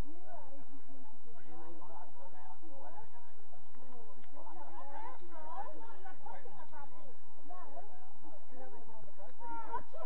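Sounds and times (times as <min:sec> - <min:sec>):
voices calling and talking: 0:00.0 - 0:10.0.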